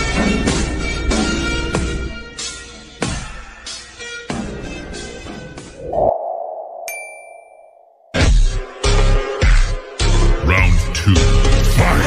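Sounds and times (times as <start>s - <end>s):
sustained tone: 5.8s - 8.1s
bright ding: 6.8s - 8.0s.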